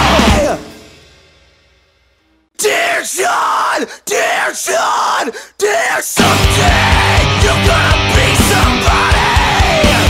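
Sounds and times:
screamed metal vocals: 0.0 - 1.0, 2.6 - 10.0.

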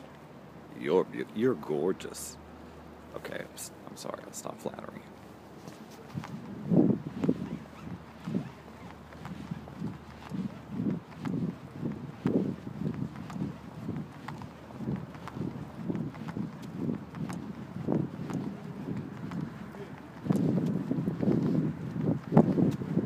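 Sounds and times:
footsteps on paved path: 3.0 - 23.0.

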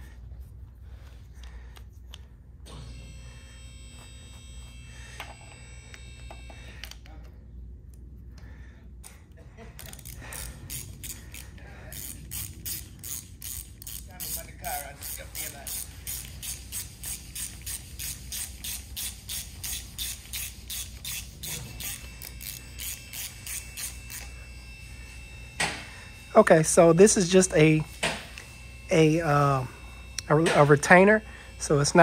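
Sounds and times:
ratchet wrench clicking: 9.8 - 24.3.

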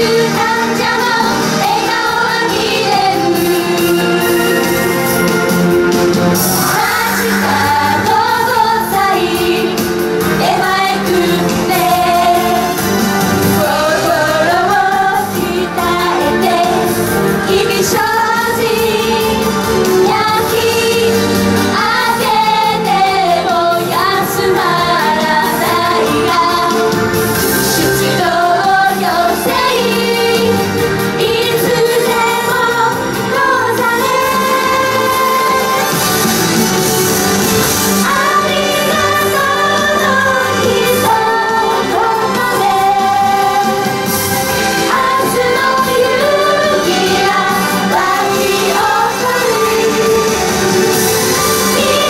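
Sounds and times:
girls singing together: 0.0 - 4.8, 6.7 - 12.8, 13.4 - 27.0, 27.8 - 36.0, 38.0 - 44.0, 44.6 - 52.0
backing music: 0.0 - 52.0.

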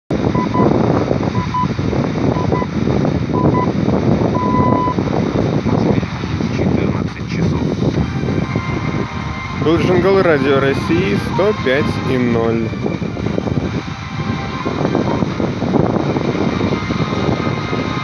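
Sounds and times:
radio time signal beeps: 4.4 - 5.0
radio static hiss: 5.7 - 8.0.

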